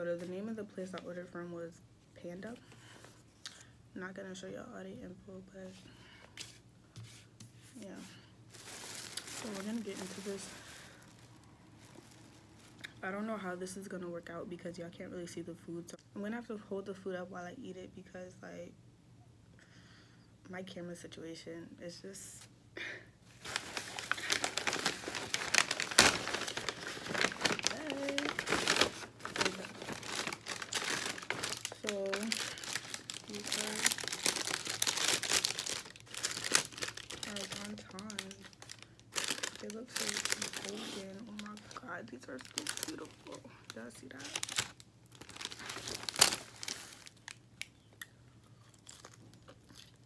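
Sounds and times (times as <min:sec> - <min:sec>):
plastic and paper bags crinkling: 0:07.8 - 0:12.9, 0:23.3 - 0:47.4.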